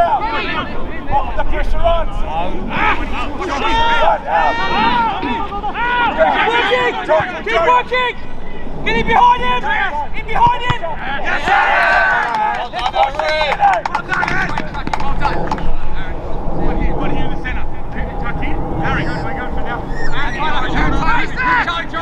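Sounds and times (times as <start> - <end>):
footballers shouting: 0.0 - 15.5, 20.0 - 22.0
steady low rumble: 13.7 - 22.0.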